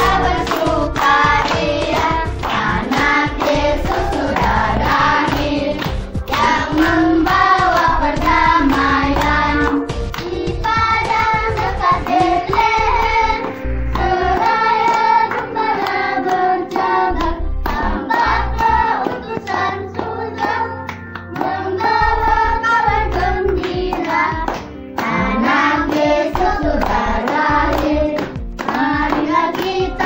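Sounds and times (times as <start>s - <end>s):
children singing: 0.0s - 13.4s, 14.0s - 20.8s, 21.4s - 30.0s.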